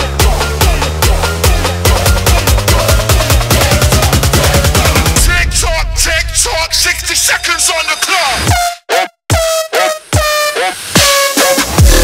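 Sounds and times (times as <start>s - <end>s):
heavy dubstep music: 0.0s - 12.0s
heavy bass hits: 0.2s - 7.3s.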